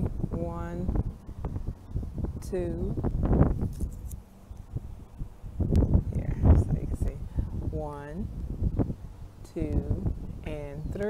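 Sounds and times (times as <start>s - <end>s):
low rumbling microphone noise: 0.0s - 11.0s.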